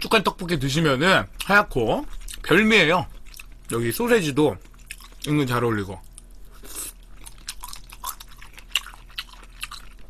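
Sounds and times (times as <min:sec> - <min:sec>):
close chewing of food: 0:01.4 - 0:03.9, 0:04.6 - 0:10.0.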